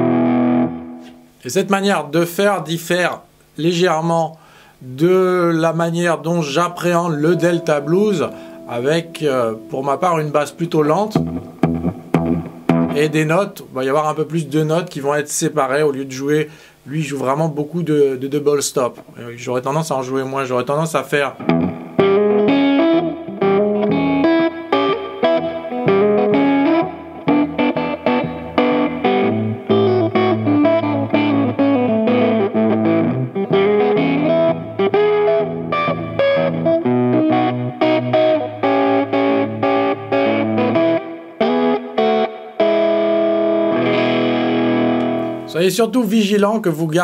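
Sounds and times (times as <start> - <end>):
fingerpicked electric guitar blues: 0.0 - 1.4, 4.5 - 15.0, 21.3 - 46.2.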